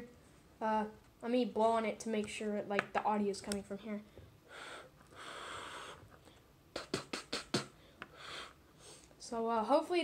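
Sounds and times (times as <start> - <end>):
breath puffs on microphone: 4.5 - 6.1.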